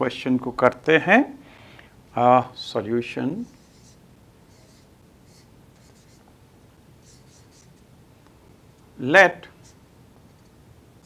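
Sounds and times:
marker scratching on whiteboard: 3.4 - 6.3, 7.0 - 7.9.

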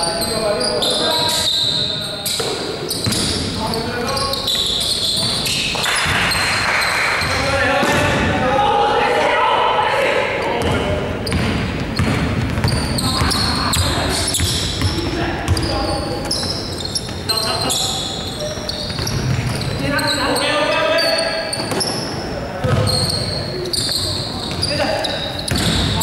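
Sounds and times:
sneakers squeaking: 0.0 - 8.5, 9.9 - 26.0
basketball bouncing on wooden court: 2.2 - 3.5, 10.6 - 17.3, 18.4 - 20.1, 22.6 - 26.0.

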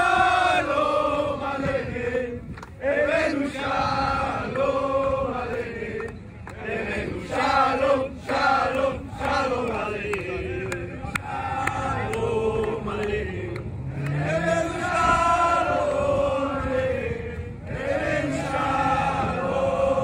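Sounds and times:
crowd chanting and singing: 0.0 - 20.0
hand claps: 2.5 - 2.8, 5.5 - 6.6, 8.7 - 14.2.

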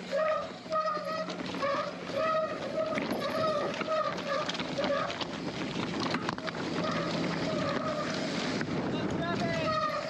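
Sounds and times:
mountain bike rattling: 0.0 - 10.0
steady whine: 0.0 - 10.0
wind on microphone: 1.7 - 10.0.

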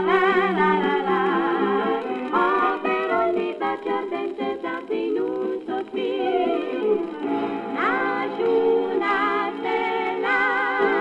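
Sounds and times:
female vocal trio singing: 0.0 - 11.0.

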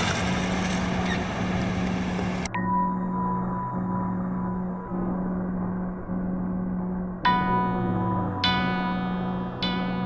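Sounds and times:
rally car driving past: 0.0 - 2.4
low steady hum: 0.0 - 10.0.

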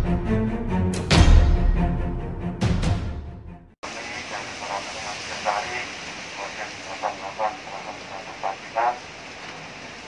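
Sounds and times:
steady background hiss: 3.8 - 10.0.

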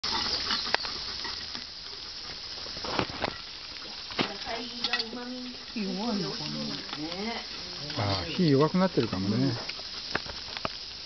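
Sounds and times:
steak sizzling on a grill: 0.0 - 11.0.

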